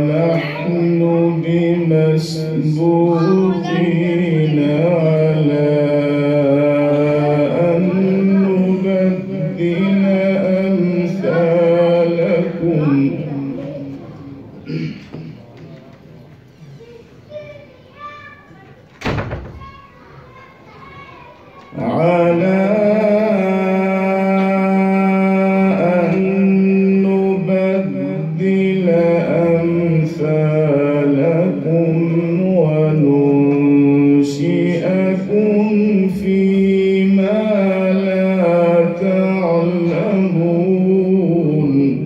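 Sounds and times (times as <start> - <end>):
man reciting melodically: 0.0 - 15.4, 21.7 - 42.0
faint voices: 6.6 - 22.6
loud thump: 19.0 - 19.8.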